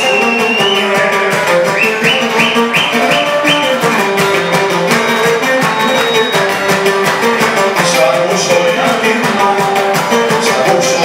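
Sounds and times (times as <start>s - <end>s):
lute strumming: 0.0s - 11.0s.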